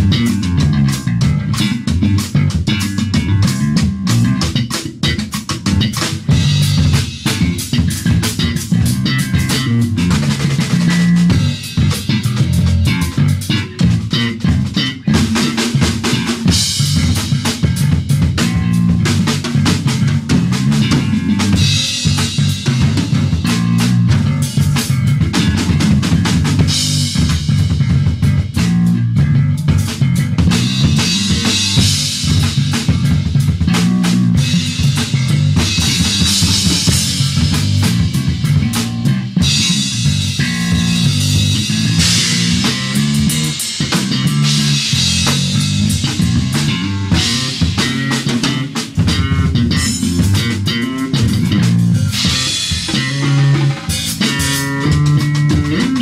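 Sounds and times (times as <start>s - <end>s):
drum kit playing: 0.0s - 56.0s
electric guitar: 0.0s - 56.0s.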